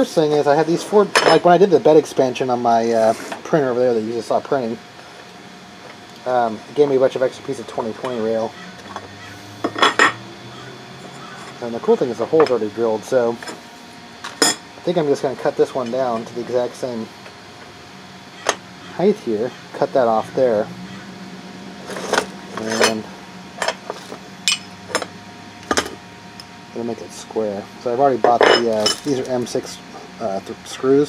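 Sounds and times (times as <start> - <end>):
metal rails clinking: 23.6 - 25.1.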